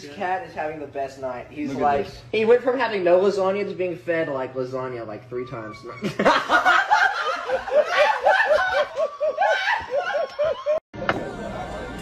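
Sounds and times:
person laughing hard: 6.0s - 10.8s.

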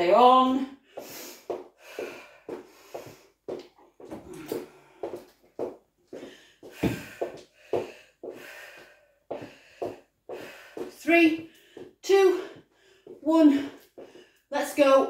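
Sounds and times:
woman breathing hard: 0.8s - 14.5s.

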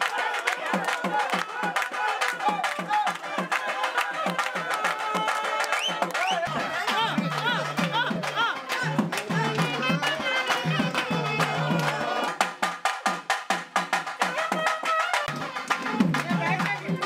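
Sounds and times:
rhythmic music with drums: 0.0s - 17.0s.

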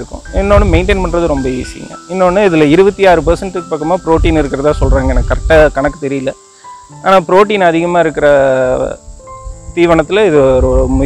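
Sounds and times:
person speaking: 0.0s - 6.4s
faint high-pitched hiss: 0.0s - 11.0s.

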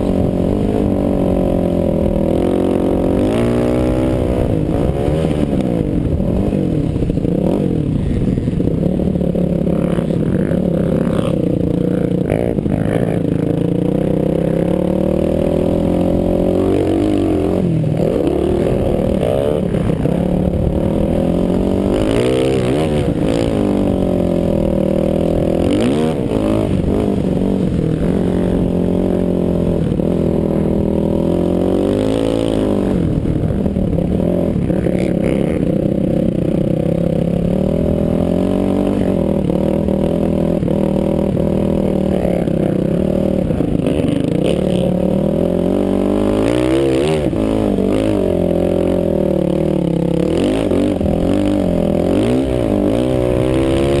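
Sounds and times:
engine revving under load: 0.0s - 8.4s, 9.2s - 35.8s, 36.6s - 54.0s.

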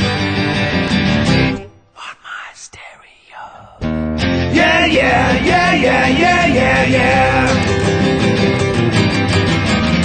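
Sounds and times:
acoustic guitars strumming chords: 3.9s - 10.0s.

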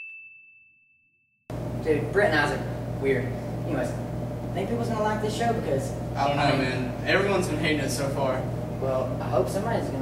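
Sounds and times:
high pure ding: 0.0s - 1.1s.

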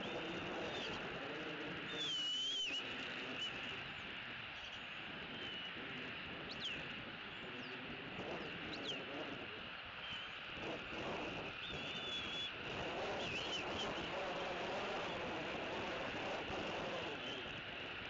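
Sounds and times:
high bird calls: 1.8s - 4.0s
wavering whistle: 1.9s - 3.5s, 11.6s - 12.6s
short falling whistles: 2.0s - 3.5s, 11.6s - 12.6s.

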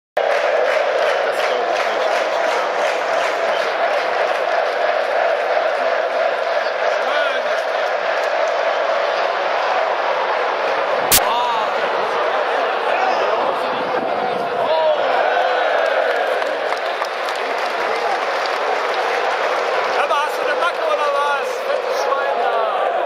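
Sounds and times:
stadium crowd voices: 0.2s - 23.0s.

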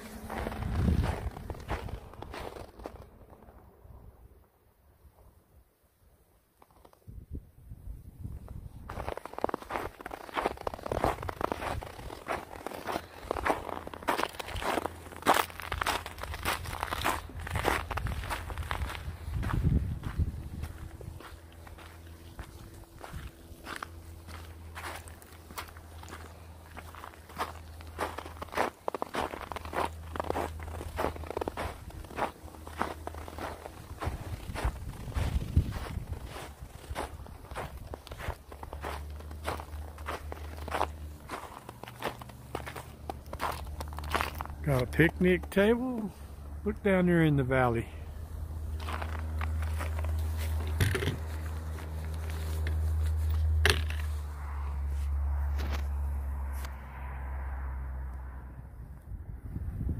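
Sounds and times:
footsteps crunching on snow: 0.0s - 3.6s, 8.4s - 56.8s
low steady rumble: 0.0s - 5.7s, 7.2s - 59.9s.

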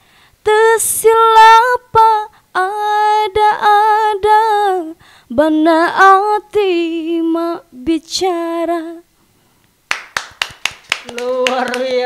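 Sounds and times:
hand clapping: 9.9s - 12.0s.

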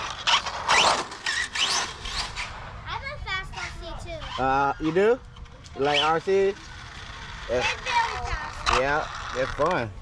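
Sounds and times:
rc car motor whine: 0.0s - 2.8s, 3.5s - 9.9s.

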